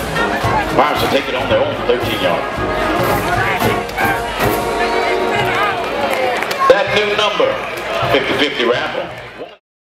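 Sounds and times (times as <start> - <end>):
marching band playing: 0.0 - 9.4.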